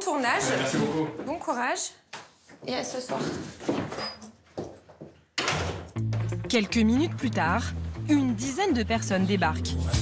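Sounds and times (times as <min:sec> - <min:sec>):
door being pulled shut: 0:05.4 - 0:06.3.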